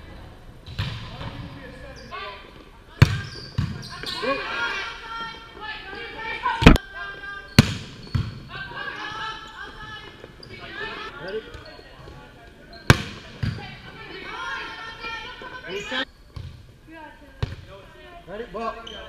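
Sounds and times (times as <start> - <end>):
players calling out: 1.9 - 16.1
ball bouncing on court floor: 3.0 - 4.2, 6.6 - 6.8, 7.6 - 8.5, 12.9 - 13.8, 16.3 - 16.6
volleyball smack: 12.9 - 13.5.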